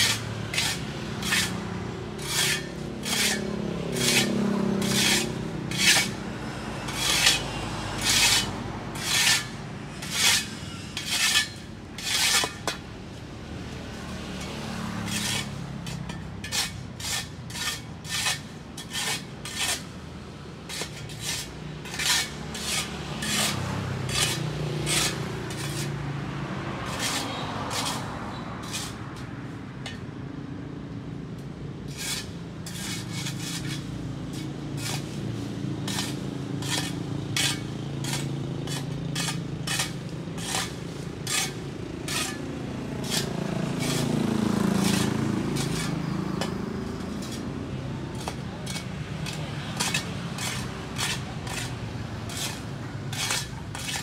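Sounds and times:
broom sweeping dry leaves: 0.0s - 6.2s, 6.9s - 12.7s, 20.7s - 26.0s, 26.8s - 29.3s, 31.8s - 54.0s
vehicle passing: 0.0s - 18.2s, 19.5s - 29.9s, 32.0s - 54.0s.

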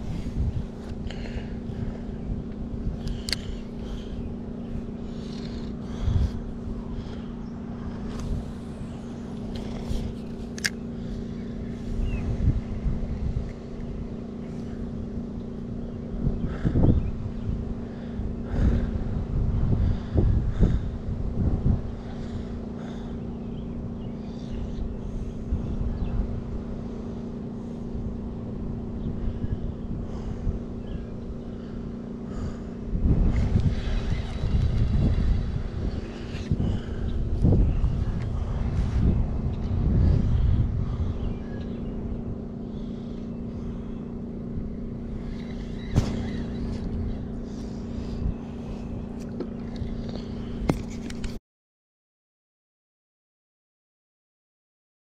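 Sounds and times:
motor humming: 0.0s - 51.4s
wind buffeting microphone: 0.0s - 51.4s
fishing reel clicking: 3.0s - 3.6s, 10.4s - 10.8s.

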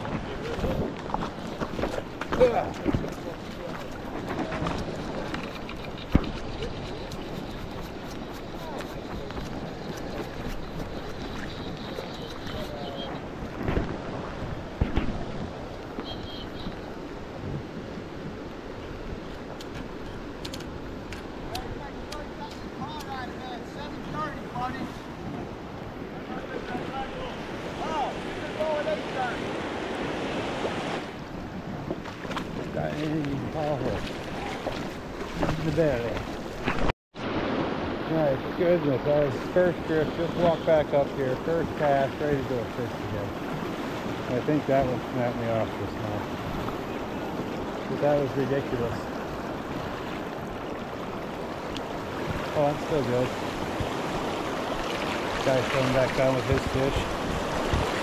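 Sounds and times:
river water rushing: 0.0s - 58.0s
wind buffeting microphone: 0.0s - 58.0s.

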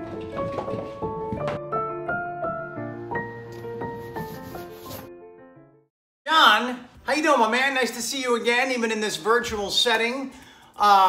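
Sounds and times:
background piano music: 0.0s - 5.9s.

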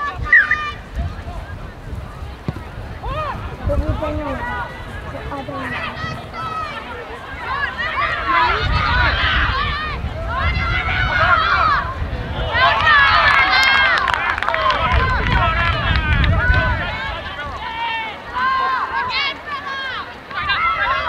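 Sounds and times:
people shouting and calling out: 0.0s - 21.0s.

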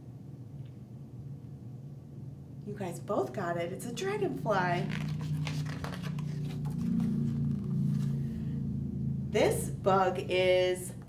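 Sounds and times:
low steady hum: 0.0s - 11.0s
paper pages rustling: 4.8s - 8.2s.

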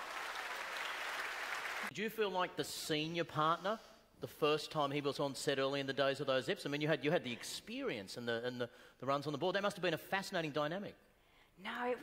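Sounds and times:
audience applauding: 0.0s - 1.9s
audience cheering: 0.0s - 1.9s.

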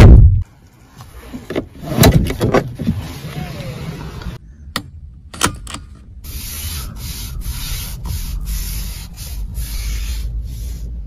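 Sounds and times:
rasping rub near microphone: 6.3s - 11.0s.

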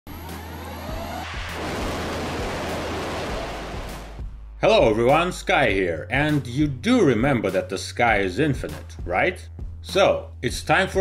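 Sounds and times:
steady rushing noise: 0.2s - 4.5s.

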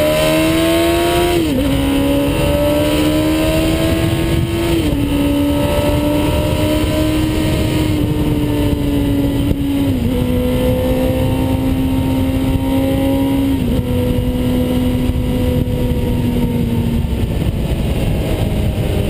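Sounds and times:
motorcycle engine shifting gears: 0.0s - 19.0s
wind rush on microphone: 0.0s - 19.0s.

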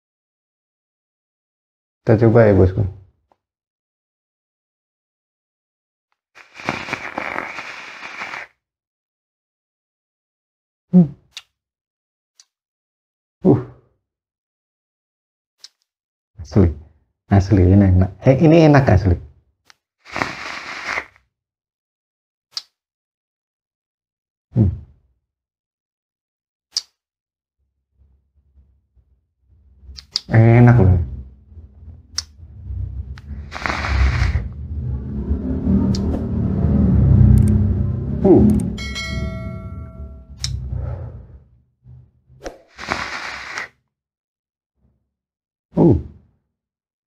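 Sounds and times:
air rushing through vape: 6.4s - 8.5s, 20.1s - 21.1s, 33.0s - 37.6s, 42.5s - 43.7s
vape coil sizzling: 6.4s - 8.5s, 33.4s - 34.4s, 42.8s - 43.7s
breathy exhales: 33.1s - 34.6s
bright chime: 38.8s - 40.6s.

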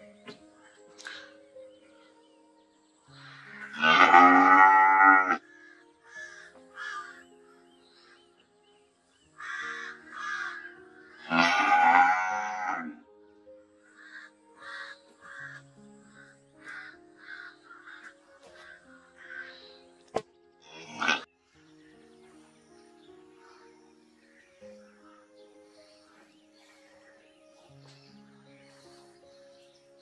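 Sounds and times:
cow mooing: 3.6s - 5.4s, 11.2s - 13.0s, 20.7s - 21.3s.

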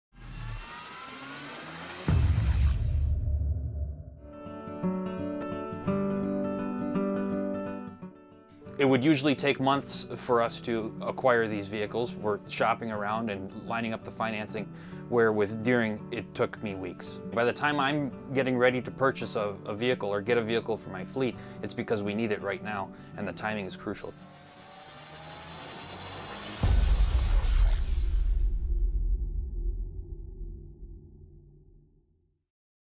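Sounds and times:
rising swell sound effect: 0.2s - 4.2s, 24.0s - 30.5s.

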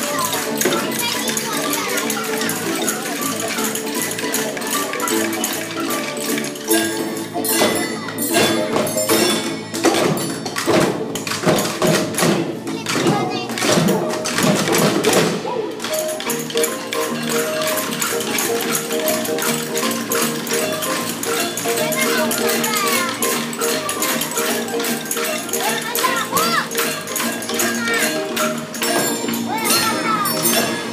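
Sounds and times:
hand percussion shaken and tapped: 0.0s - 30.9s
held musical notes: 0.0s - 30.9s
voices singing: 18.4s - 30.9s.

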